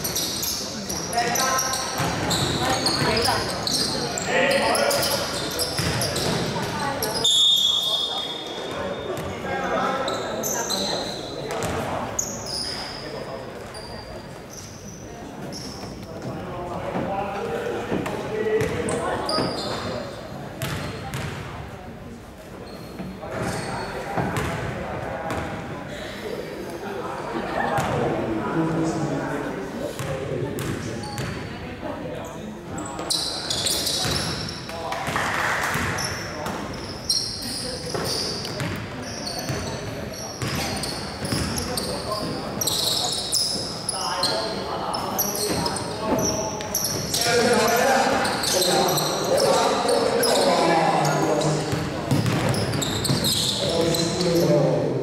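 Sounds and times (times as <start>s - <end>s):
sneaker squeaks: 0.0s - 16.1s, 17.9s - 21.5s, 22.6s - 24.7s, 30.0s - 31.6s, 32.2s - 54.7s
basketball bouncing on gym floor: 20.6s - 21.4s, 30.6s - 31.4s, 40.4s - 41.6s, 51.7s - 53.3s.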